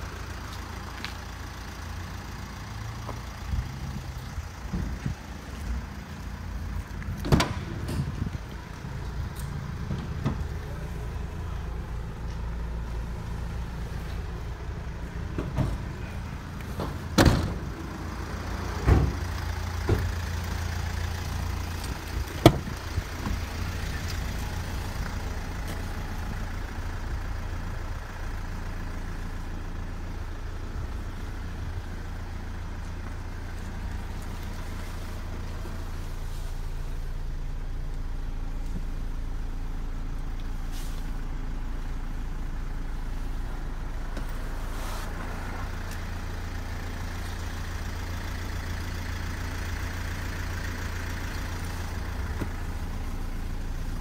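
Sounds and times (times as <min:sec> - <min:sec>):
steady low rumble: 0:00.0 - 0:54.0
van door shutting: 0:07.2 - 0:08.3, 0:15.3 - 0:16.1, 0:16.7 - 0:17.9, 0:18.6 - 0:20.2, 0:22.3 - 0:23.4.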